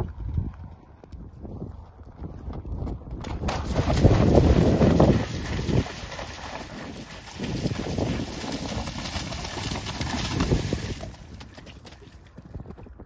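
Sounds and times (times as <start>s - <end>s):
hooves cantering through water: 2.6s - 12.4s
water splashing: 3.2s - 11.7s.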